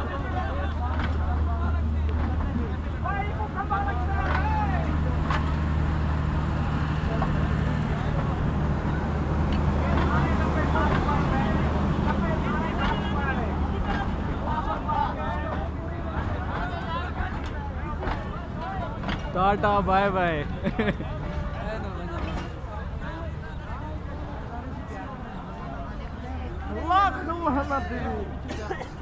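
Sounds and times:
crowd chatter and shouts: 0.0s - 29.0s
train diesel engine droning: 0.0s - 29.0s.

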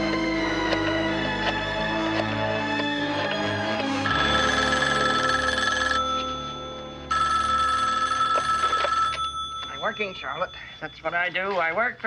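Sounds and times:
background music: 0.0s - 12.0s
desk telephone ringing: 2.7s - 11.4s.

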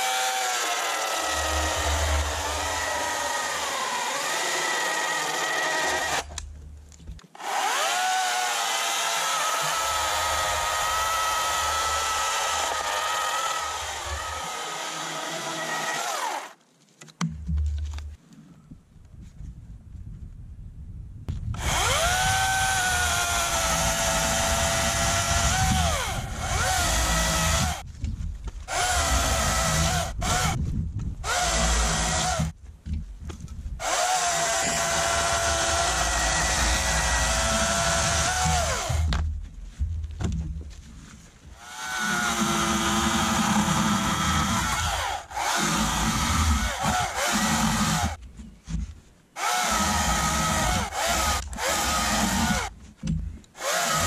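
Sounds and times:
chainsaw cutting a log: 0.0s - 6.4s, 7.3s - 16.6s, 21.6s - 27.8s, 28.7s - 30.6s, 31.2s - 32.6s, 33.8s - 39.2s, 41.6s - 48.2s, 49.4s - 54.0s.

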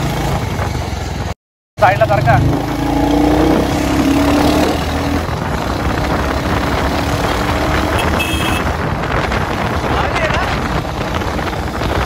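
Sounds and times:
motorcycle engine: 0.0s - 12.0s
wind and road noise: 0.0s - 12.0s.

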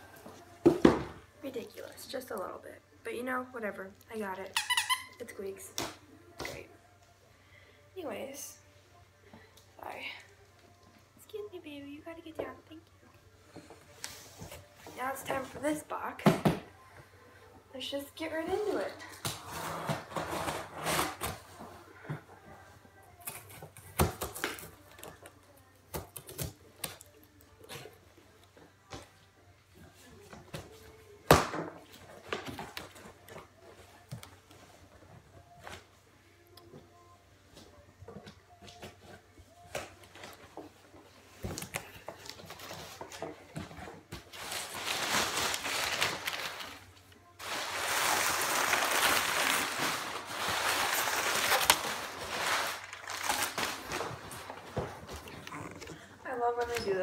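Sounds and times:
packing paper crinkling: 44.3s - 55.1s.

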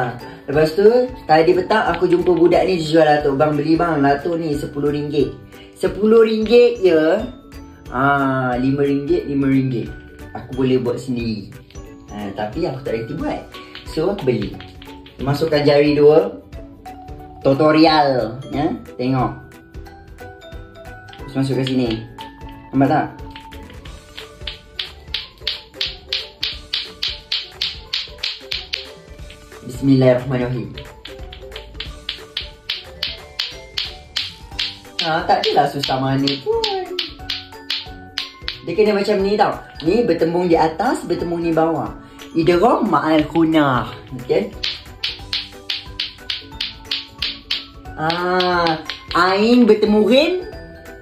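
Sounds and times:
background music with sustained notes: 0.0s - 51.0s
clacker toy balls clacking: 13.4s - 15.9s, 21.0s - 29.6s, 30.6s - 40.2s, 43.0s - 49.9s.

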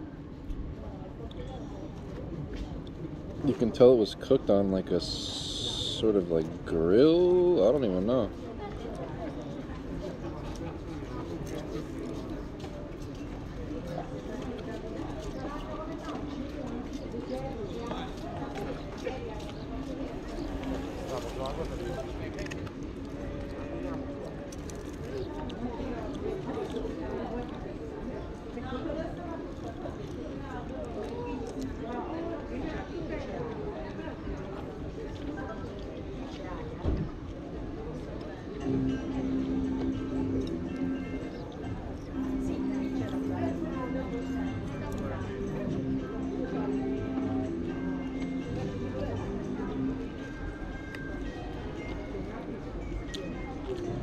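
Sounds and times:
indistinct voices: 38.6s - 51.9s.

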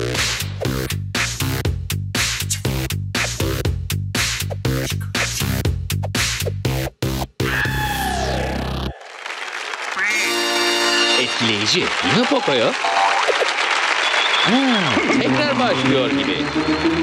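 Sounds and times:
cartoon voices whooping: 7.5s - 9.0s
cheering and applause: 7.5s - 17.0s
electronic dance music: 10.0s - 13.6s, 14.5s - 17.0s.

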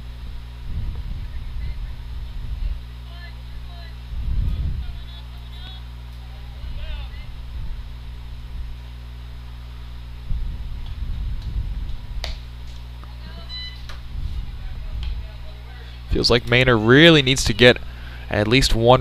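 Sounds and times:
steady low hum: 0.0s - 19.0s
wind gusts on microphone: 0.6s - 2.9s, 4.0s - 5.1s, 6.6s - 8.8s, 10.1s - 12.2s, 14.0s - 15.2s.

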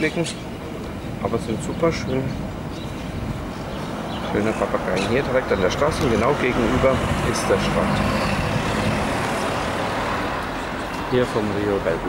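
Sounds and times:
car driving past: 1.8s - 12.0s.

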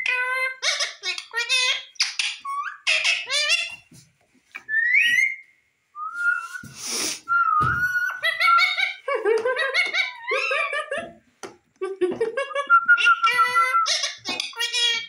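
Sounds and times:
parakeet whistling and chattering: 0.0s - 3.8s, 4.6s - 5.4s, 6.2s - 9.0s, 12.7s - 15.0s.

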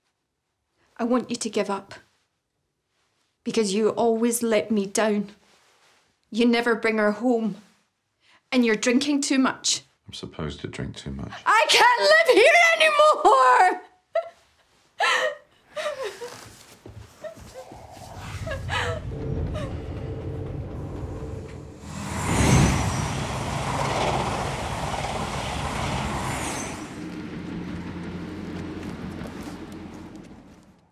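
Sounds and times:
low drone with held tones: 17.4s - 28.6s
loud rushing swell: 17.4s - 29.2s.

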